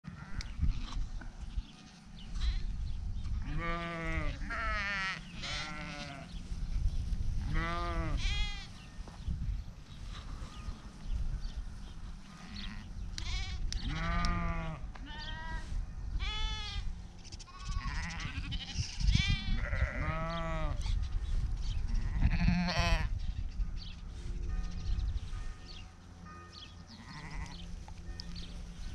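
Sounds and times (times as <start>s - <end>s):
sheep bleating: 3.4s - 6.4s, 7.5s - 8.8s, 12.3s - 15.6s, 16.2s - 20.8s, 22.0s - 23.1s, 26.9s - 27.6s.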